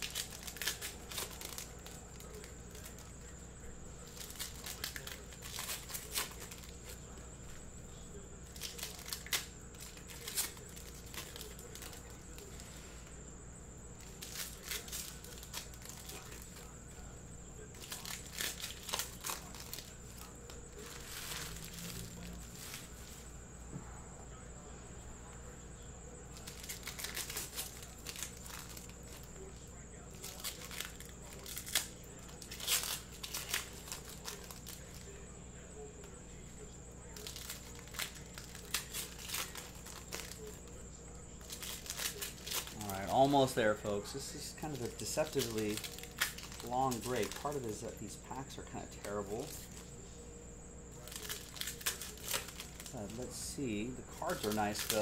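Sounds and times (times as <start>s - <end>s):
cards being handled: 0.0s - 13.2s, 14.0s - 23.3s, 26.3s - 35.2s, 37.0s - 50.1s, 50.9s - 55.0s
foil wrappers tearing and crinkling: 0.0s - 13.2s, 14.0s - 23.2s, 26.3s - 35.2s, 36.1s - 50.0s, 50.9s - 55.0s.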